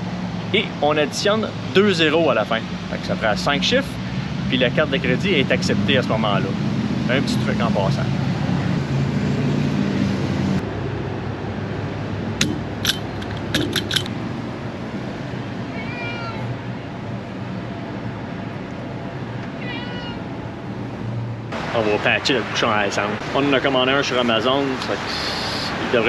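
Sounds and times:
steady low hum: 10.2 - 15.7
cat meowing: 15.7 - 16.5, 19.6 - 20.3.

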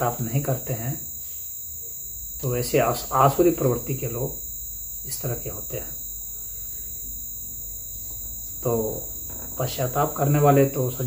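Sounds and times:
man speaking: 0.0 - 1.0, 2.4 - 4.4, 5.1 - 6.0, 8.6 - 11.0
faint low hum: 0.0 - 11.0
high-pitched drone: 0.0 - 11.0.

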